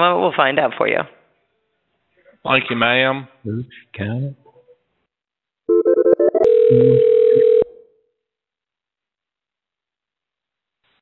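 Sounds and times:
choppy tones and clicks: 0:05.7 - 0:07.0
telephone dial tone: 0:05.7 - 0:07.8.

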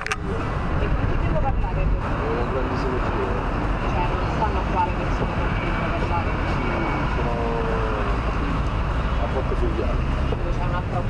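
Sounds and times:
people talking: 0:00.0 - 0:08.5, 0:09.2 - 0:11.0.

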